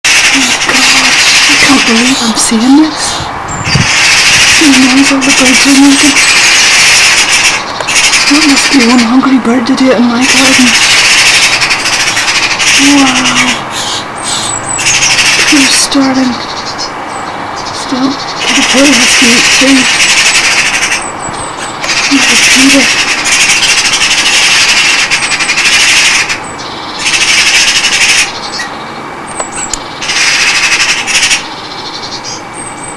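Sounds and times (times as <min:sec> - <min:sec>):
birds screeching raspily: 0:00.1 - 0:32.9
high falling bird calls: 0:00.1 - 0:32.9
scratchy rubbing noise: 0:00.2 - 0:09.0, 0:17.8 - 0:21.0, 0:21.8 - 0:26.4.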